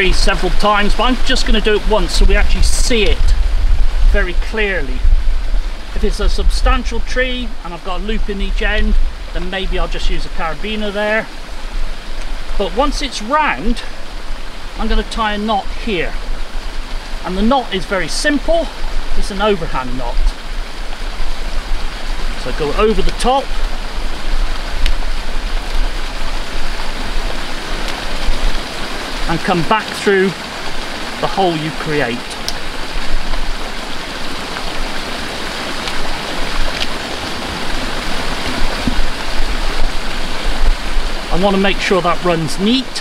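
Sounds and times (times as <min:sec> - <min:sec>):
fast-flowing river water: 0:00.0 - 0:43.0
low rumble: 0:02.2 - 0:10.0.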